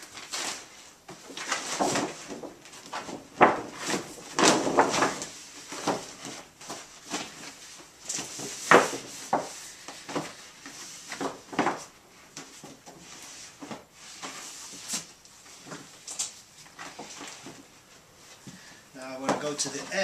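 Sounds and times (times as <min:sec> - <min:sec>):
plastic liner rustling and crinkling: 0:00.0 - 0:20.0.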